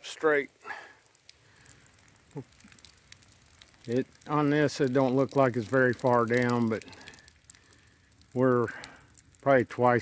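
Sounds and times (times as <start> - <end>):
faint crackles and rustling: 0.0 - 10.0
man speaking: 3.8 - 6.8, 8.4 - 8.8, 9.4 - 10.0.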